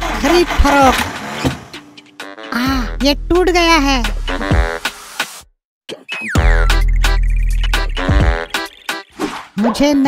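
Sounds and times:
background music: 0.1s - 9.7s.

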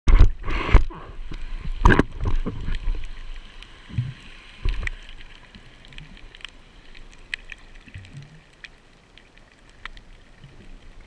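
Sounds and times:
water moving over camera housing: 0.1s - 3.4s.

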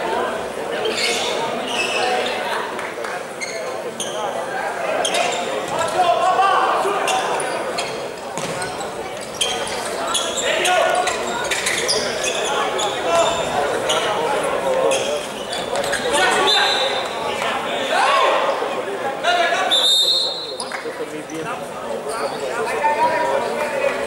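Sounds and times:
shoe squeaks on wooden court: 0.8s - 2.4s, 3.4s - 4.4s, 5.0s - 5.9s, 7.0s - 17.2s
ball kicks and bounces: 8.4s - 8.8s.

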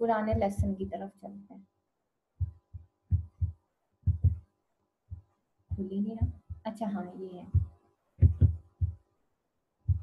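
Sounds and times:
dull low thumps: 0.2s - 1.0s, 2.4s - 4.4s, 5.1s - 6.7s, 7.4s - 9.1s.

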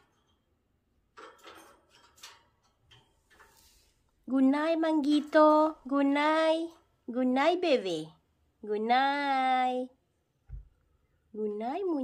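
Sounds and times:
bird claws scraping cage bars: 1.2s - 3.8s.

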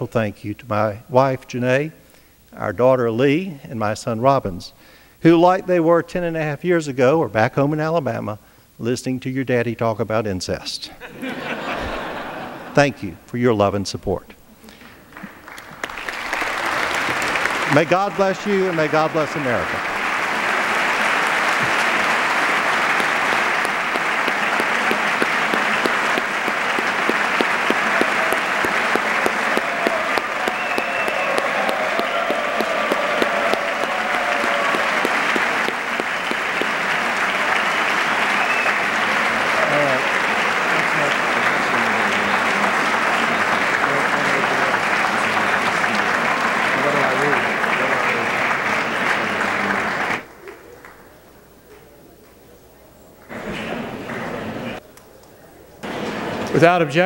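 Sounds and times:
large crowd applauding: 14.8s - 51.0s
voices through applause: 14.8s - 51.2s, 53.3s - 54.8s.

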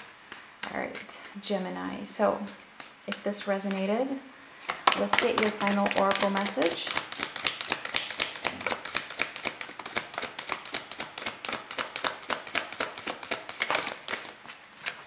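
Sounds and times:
cards being shuffled by hand: 4.6s - 15.0s.

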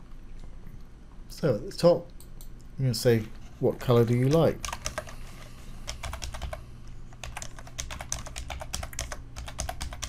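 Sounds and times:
typing on keyboard: 4.3s - 5.2s, 5.9s - 6.6s, 7.2s - 10.0s.

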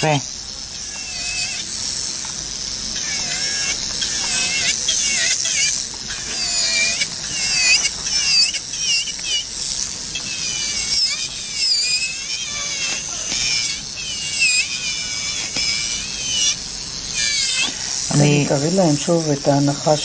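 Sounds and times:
electric nail drill whining: 0.0s - 20.0s.

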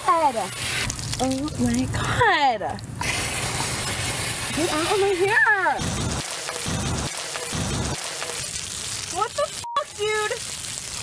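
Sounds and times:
shower water splashing on concrete: 0.0s - 11.0s.

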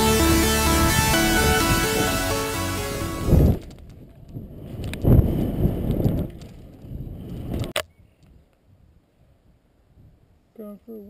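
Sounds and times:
wind rumbling: 0.0s - 7.8s.

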